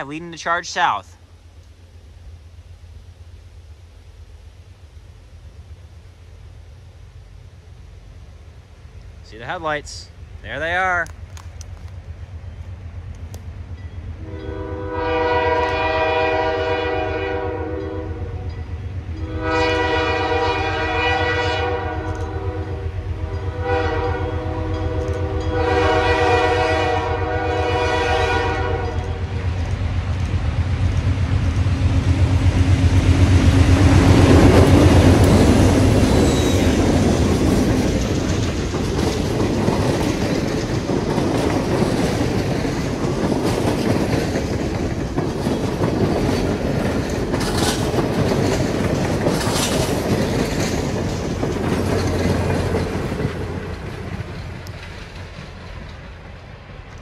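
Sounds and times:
diesel locomotives passing: 0.0 - 57.0
train cars clicking over rail joints: 9.4 - 14.0, 28.2 - 57.0
locomotive air horn: 14.2 - 18.5, 19.1 - 29.2.

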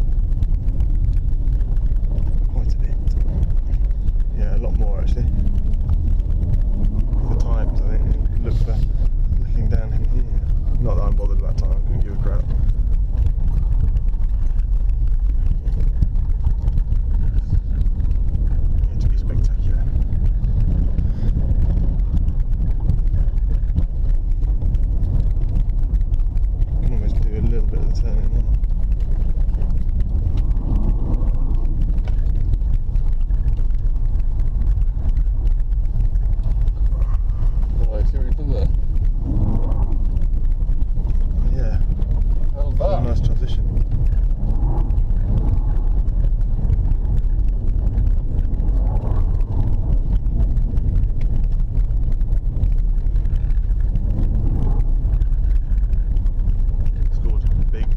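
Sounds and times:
car engine and tyres rumbling: 0.0 - 57.9.

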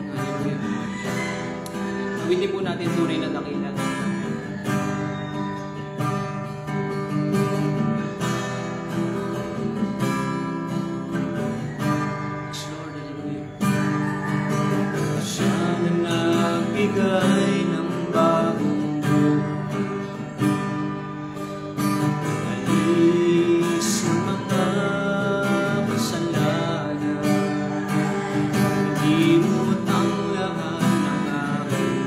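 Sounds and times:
man singing: 0.0 - 0.9, 12.4 - 13.9, 15.0 - 20.5, 22.2 - 32.0
acoustic guitar strumming: 0.0 - 32.0.

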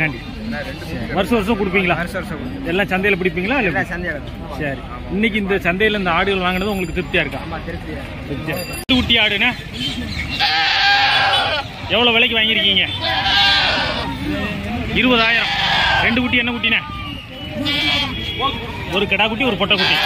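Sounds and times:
goats bleating: 10.4 - 11.7, 13.0 - 14.1, 15.1 - 16.2, 17.6 - 18.1, 19.7 - 20.0.

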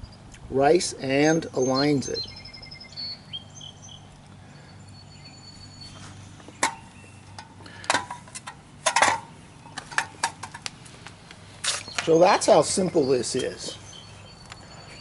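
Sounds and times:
sharp clicks and light knocks: 6.4 - 12.1.

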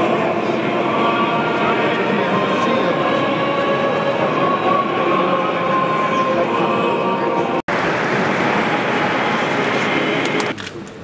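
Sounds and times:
echoing murmur of voices: 0.0 - 10.9.

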